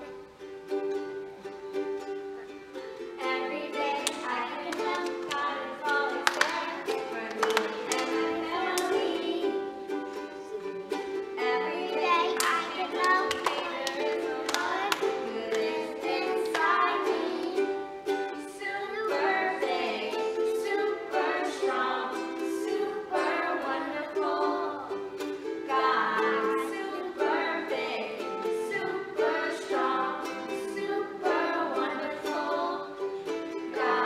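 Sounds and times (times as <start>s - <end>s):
children's choir singing: 0.0s - 34.0s
plucked string accompaniment: 0.0s - 34.0s.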